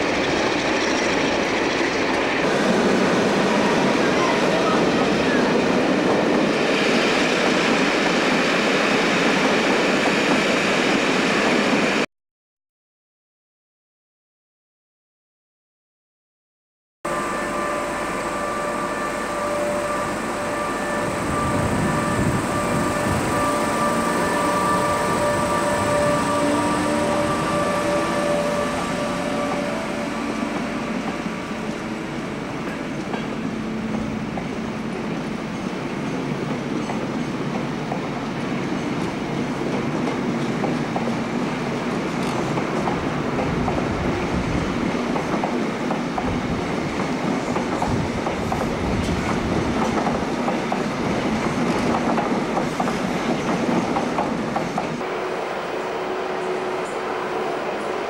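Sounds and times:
train coaches rumbling: 0.0s - 12.0s, 17.4s - 58.0s
electric locomotive motors whining: 17.1s - 35.8s, 55.0s - 58.0s.

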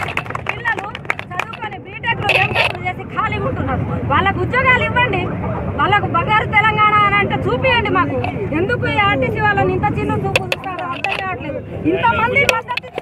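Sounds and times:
low background rumble: 0.0s - 13.0s.

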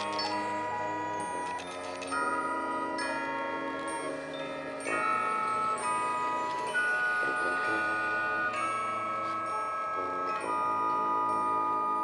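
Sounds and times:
chimes and mallet percussion: 0.0s - 12.0s.

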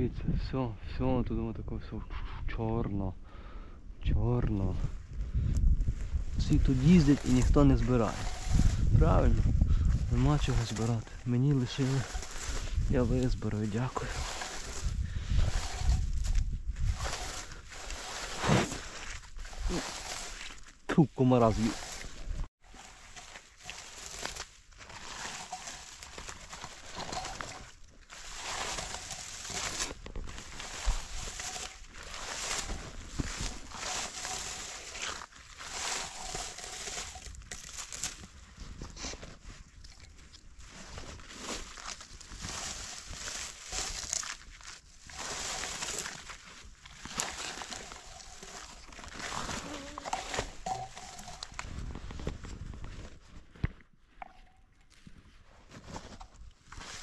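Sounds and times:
berry scoop rustling through shrubs: 6.0s - 53.3s, 55.7s - 57.0s.

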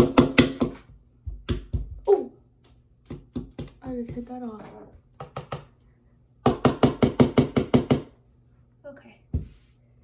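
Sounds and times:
hammer tapping a nail: 0.0s - 1.9s, 5.2s - 5.7s, 6.4s - 8.2s.

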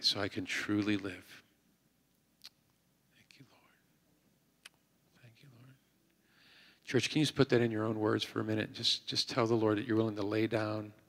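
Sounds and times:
faint whispered voice: 3.1s - 3.9s, 5.1s - 5.9s.

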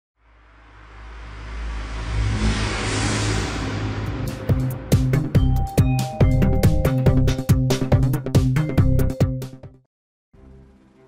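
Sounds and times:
whoosh riser: 0.2s - 5.6s
low sustained drone: 0.3s - 5.0s.

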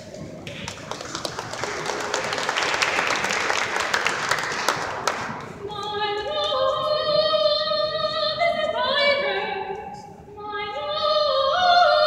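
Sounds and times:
woman singing unaccompanied: 5.6s - 12.0s.

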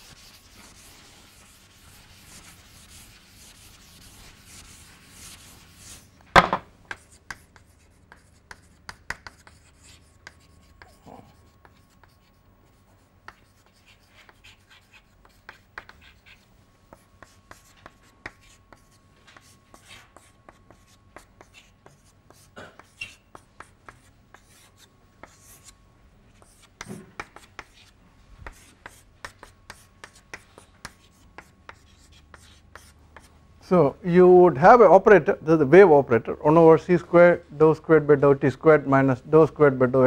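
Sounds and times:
chalk tapping and scratching: 0.0s - 33.3s.

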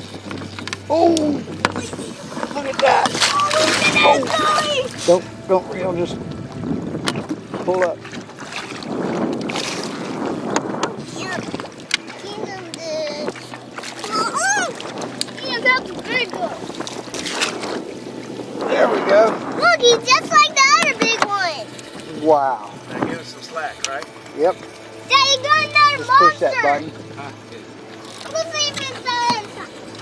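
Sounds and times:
water splashing and rushing: 0.0s - 30.0s.

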